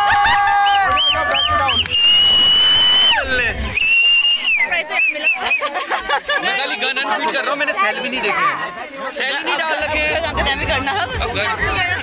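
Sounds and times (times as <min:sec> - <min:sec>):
excited voices: 0:00.0 - 0:12.0
loud finger whistling: 0:00.7 - 0:05.6.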